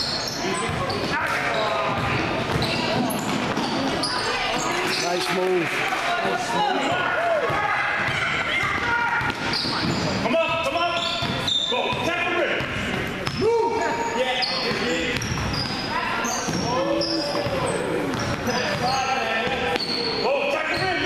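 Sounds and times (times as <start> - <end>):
sneakers squeaking: 0.0 - 5.8, 6.4 - 21.0
children shouting: 5.9 - 9.4.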